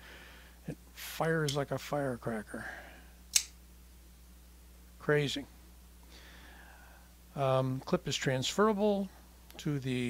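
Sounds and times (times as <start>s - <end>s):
flipper knife snapping open: 3.3s - 3.5s.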